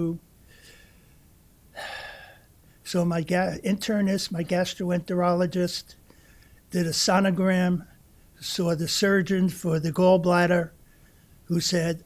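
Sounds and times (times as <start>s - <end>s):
man inhaling: 0.4s - 2.5s, 6.1s - 6.6s.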